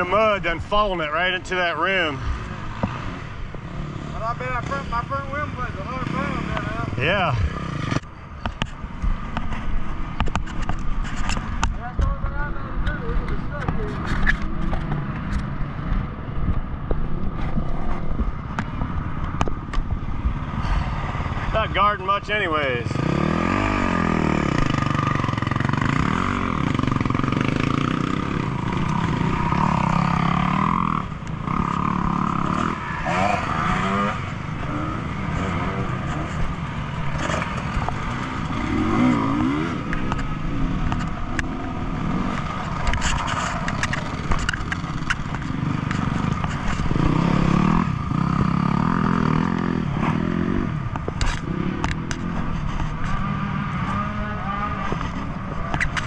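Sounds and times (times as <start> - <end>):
dirt bike engines revving: 0.0 - 56.0.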